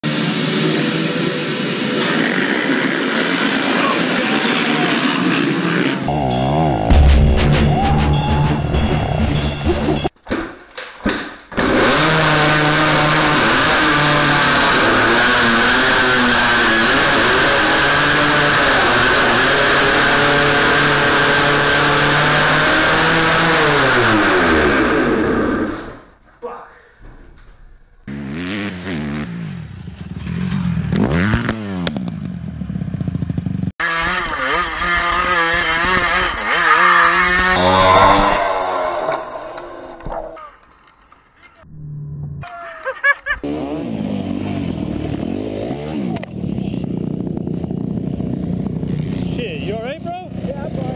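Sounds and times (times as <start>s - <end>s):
dirt bike engines revving: 0.0s - 7.1s, 11.6s - 26.2s, 28.0s - 41.7s, 42.4s - 50.9s
dirt bike engine running: 11.6s - 26.0s, 28.0s - 39.6s, 43.4s - 50.9s.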